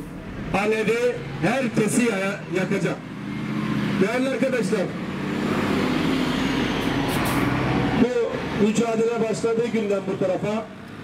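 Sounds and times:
heavy vehicle engine running: 0:00.0 - 0:11.0
tyre and road noise: 0:00.0 - 0:11.0.

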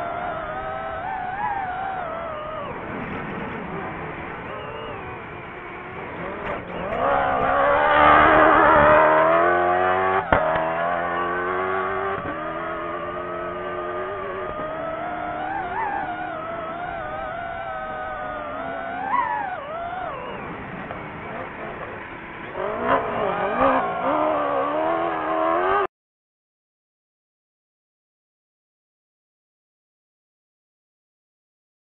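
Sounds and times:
rally car engine revving: 0:00.0 - 0:25.9.

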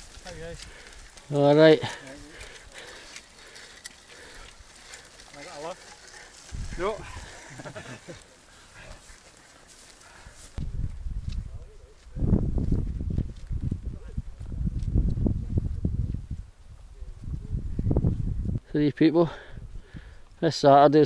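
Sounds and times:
low rustle of movement: 0:00.0 - 0:18.6.

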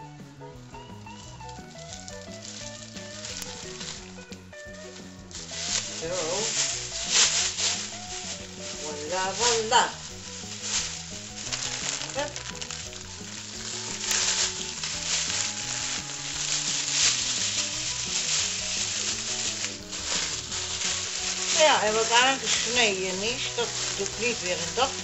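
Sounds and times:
plastic bag crinkling: 0:01.0 - 0:25.0.

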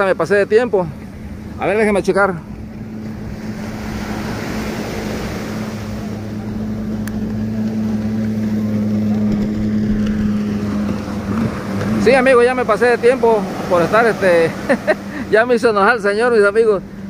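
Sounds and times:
motorboat engine humming: 0:00.0 - 0:17.0.

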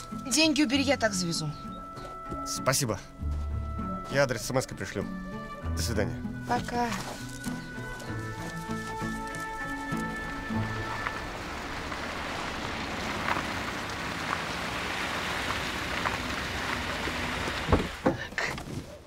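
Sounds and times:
background music with held notes: 0:00.0 - 0:12.1
car tyres hissing on snow: 0:09.8 - 0:18.1.

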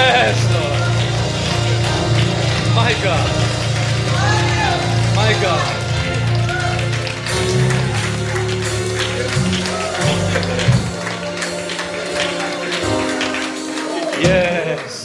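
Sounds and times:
bass line: 0:00.0 - 0:13.3
drum beats: 0:00.0 - 0:14.8
organ chords: 0:00.0 - 0:15.0.

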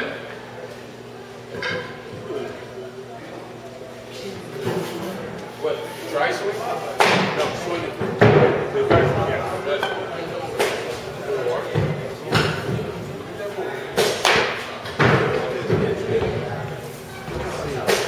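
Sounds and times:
voices in background: 0:00.0 - 0:18.0
bats hitting baseballs: 0:07.0 - 0:11.0, 0:11.7 - 0:13.0, 0:13.9 - 0:16.1, 0:17.5 - 0:18.0.

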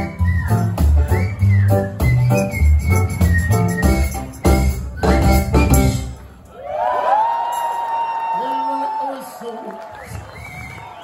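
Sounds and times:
song: 0:00.0 - 0:06.4.

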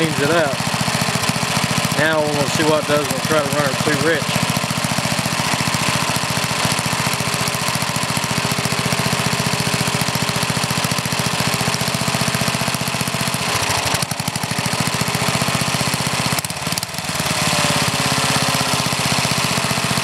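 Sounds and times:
small engine idling: 0:00.0 - 0:20.0.

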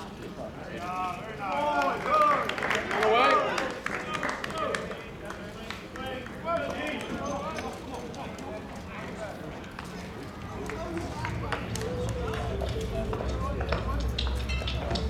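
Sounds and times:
distant people talking: 0:00.0 - 0:15.0
low rumble: 0:10.5 - 0:15.0.

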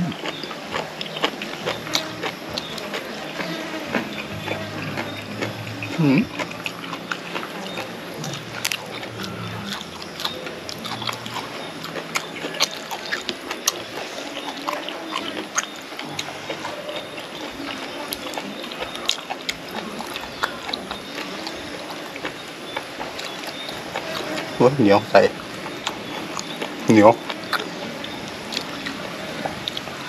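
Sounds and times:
person chewing food: 0:00.0 - 0:30.0
mouth smacks: 0:25.8 - 0:30.0.

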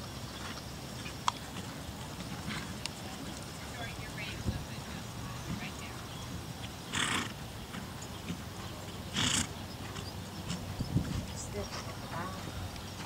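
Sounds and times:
horse hoofbeats on sand: 0:00.0 - 0:13.0
horse snorting: 0:06.8 - 0:08.4, 0:09.1 - 0:10.7.

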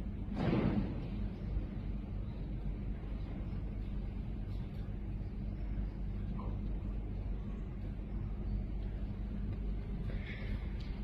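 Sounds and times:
faint even hum: 0:00.0 - 0:11.0
low rumble: 0:00.0 - 0:11.0.

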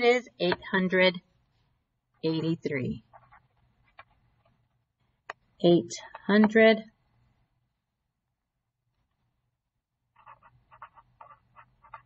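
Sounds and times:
marker squeaking on paper: 0:10.2 - 0:12.0.

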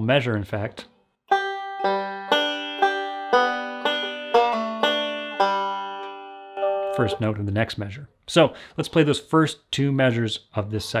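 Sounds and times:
banjo picked slowly: 0:01.3 - 0:07.4.

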